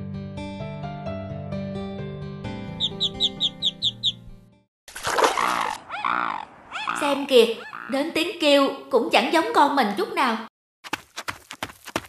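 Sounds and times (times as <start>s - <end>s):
cartoon background music: 2.6s - 4.4s
high chirping notes: 2.7s - 4.3s
loud rough animal cry: 5.4s - 8.0s.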